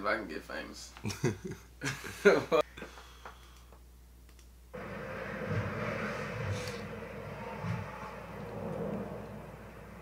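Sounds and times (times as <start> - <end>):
low rumbling music soundtrack: 4.7 - 10.0.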